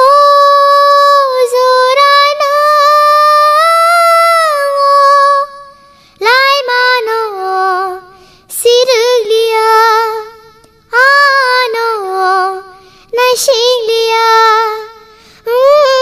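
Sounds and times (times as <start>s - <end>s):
child singing: 0.0s - 16.0s.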